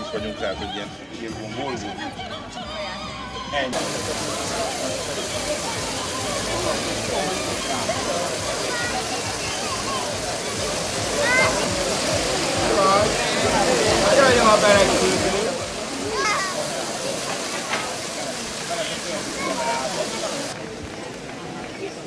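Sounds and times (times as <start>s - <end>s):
crowd chatter: 0.0s - 22.0s
fountain water splashing: 3.7s - 22.0s
raised voices: 3.8s - 20.6s.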